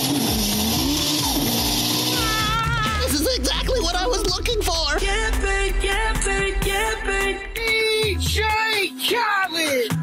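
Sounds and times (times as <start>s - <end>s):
car engine revving: 0.0s - 8.4s
music with bass beat: 0.0s - 10.0s.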